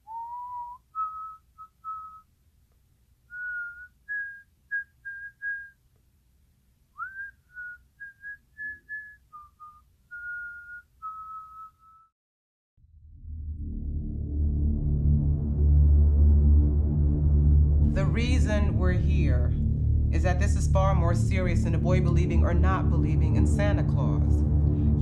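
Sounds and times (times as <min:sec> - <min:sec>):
person whistling a tune: 0:00.0 - 0:02.3, 0:03.3 - 0:05.8, 0:07.0 - 0:12.1.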